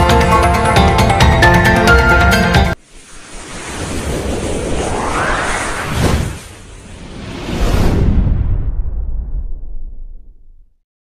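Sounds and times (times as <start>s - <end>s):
whoosh rushing noise: 2.8s - 10.0s.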